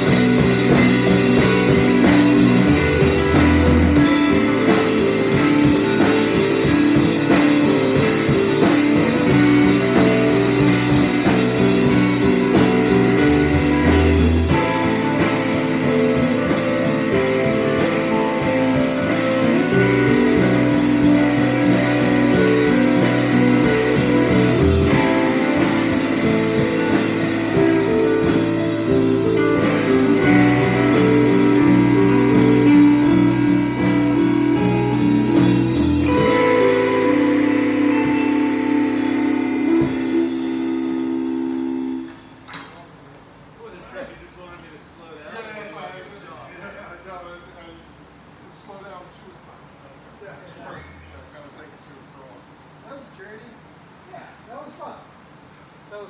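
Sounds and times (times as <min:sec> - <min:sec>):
live rock band jam: 0:00.0 - 0:43.5.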